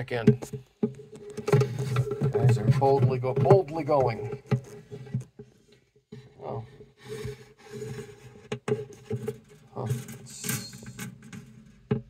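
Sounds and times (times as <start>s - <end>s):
phone scraping against wood: 0.3s - 11.9s.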